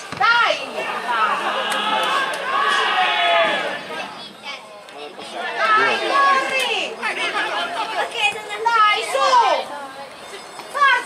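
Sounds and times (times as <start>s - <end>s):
crowd shouting: 0.0s - 9.7s.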